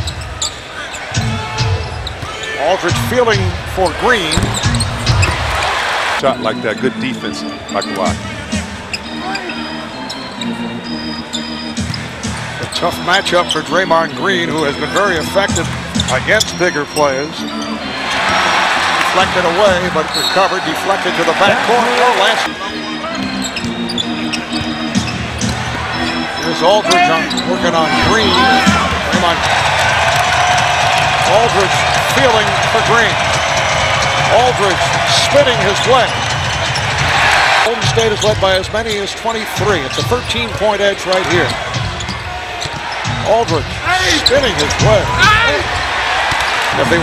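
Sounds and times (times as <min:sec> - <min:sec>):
sneaker squeaks: 0:00.0 - 0:01.2, 0:01.8 - 0:02.6, 0:04.2 - 0:05.8, 0:07.7 - 0:08.2, 0:08.8 - 0:12.8, 0:15.5 - 0:17.8, 0:20.1 - 0:20.7, 0:22.8 - 0:26.2, 0:39.9 - 0:43.2
arena crowd noise: 0:00.0 - 0:47.0
arena music: 0:02.6 - 0:47.0
sneaker squeaks on hardwood: 0:04.3 - 0:05.6, 0:11.3 - 0:12.8, 0:23.4 - 0:25.7, 0:41.1 - 0:43.2.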